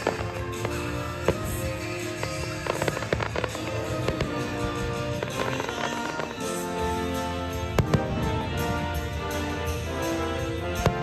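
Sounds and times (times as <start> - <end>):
fireworks bangs and crackles: 0.0 - 11.0
music: 0.0 - 11.0.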